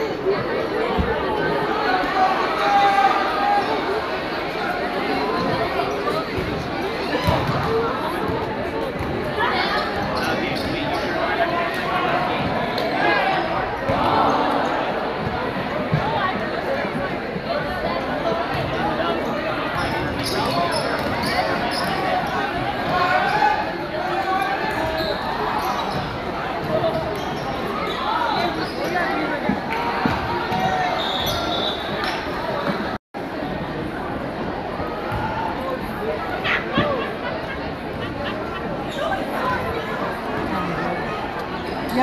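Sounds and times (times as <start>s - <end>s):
crowd chatter echoing: 0.0s - 42.0s.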